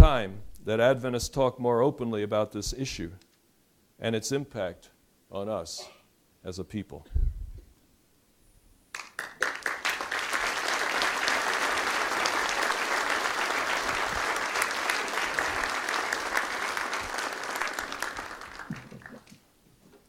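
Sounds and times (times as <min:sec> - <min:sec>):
audience applauding: 0:08.9 - 0:19.4.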